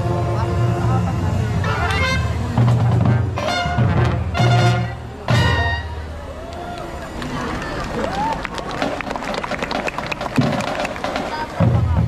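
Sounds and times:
loud low brass chord: 0:00.0 - 0:06.2
marching band playing: 0:00.0 - 0:12.0.

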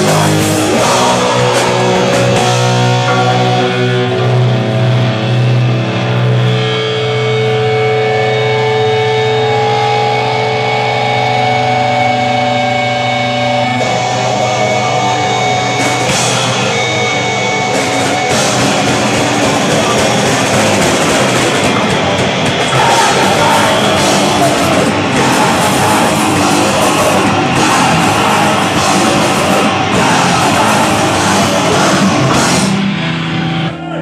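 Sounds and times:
punk band playing live: 0:00.0 - 0:34.0.

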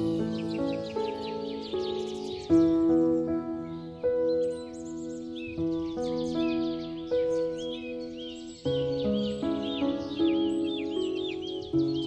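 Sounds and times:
birds chirping: 0:00.0 - 0:12.0
slow soft piano music: 0:00.0 - 0:12.0.

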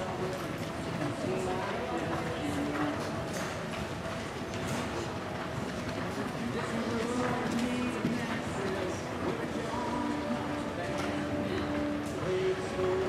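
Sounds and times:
background voices: 0:00.0 - 0:13.0
horse hoofbeats on dirt: 0:00.0 - 0:13.0.

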